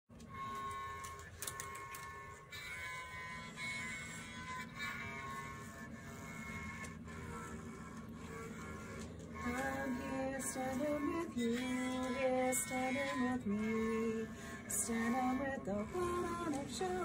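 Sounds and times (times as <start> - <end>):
bowed cello sustained notes: 0.2 - 17.0.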